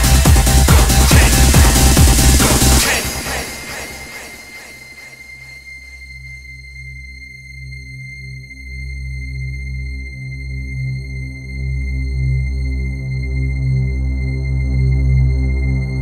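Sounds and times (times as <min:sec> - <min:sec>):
pulsing synth bass: 0:00.0 - 0:07.2
steady high synth tone: 0:00.0 - 0:16.0.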